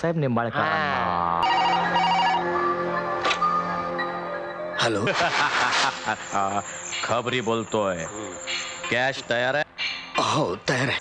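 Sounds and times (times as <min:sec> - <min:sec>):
desk telephone ringing: 0:01.4 - 0:02.9
background music: 0:01.4 - 0:11.0.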